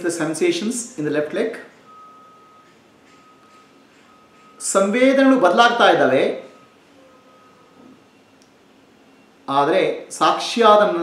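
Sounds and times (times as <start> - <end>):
faint thin high tone: 6.4 - 8.3.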